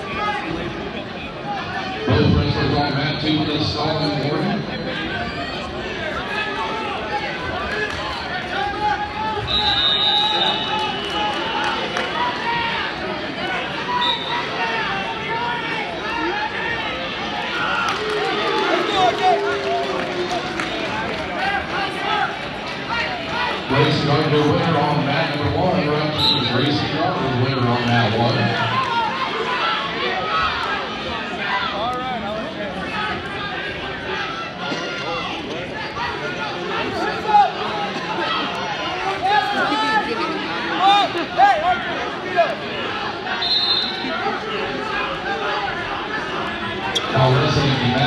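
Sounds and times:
crowd talking and calling out: 0:00.0 - 0:48.0
man's loud voice: 0:02.1 - 0:04.8, 0:23.7 - 0:28.9, 0:47.2 - 0:48.0.

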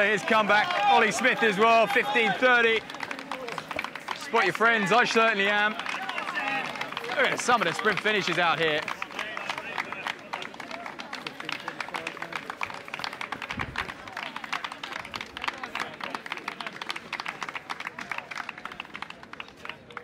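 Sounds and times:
crowd clapping: 0:00.0 - 0:20.0
crowd voices: 0:00.0 - 0:20.0.

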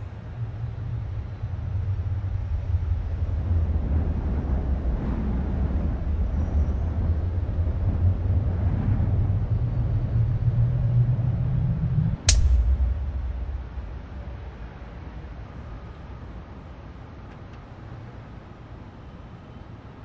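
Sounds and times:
steady low rumble: 0:10.7 - 0:19.9
faint hiss: 0:12.3 - 0:19.9.

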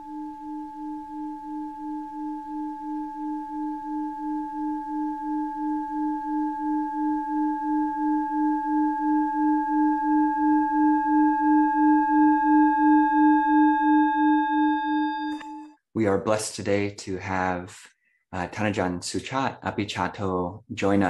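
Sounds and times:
singing bowl ringing: 0:00.0 - 0:15.8.

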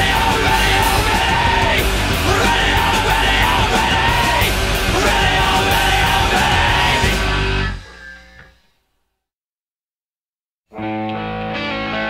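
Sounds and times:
man shouting vocals: 0:00.0 - 0:07.2
rock band playing: 0:00.0 - 0:08.1.

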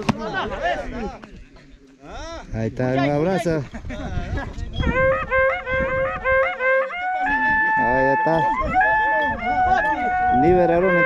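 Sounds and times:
voices: 0:00.0 - 0:11.0
cow-horn trumpet playing: 0:04.8 - 0:11.0.

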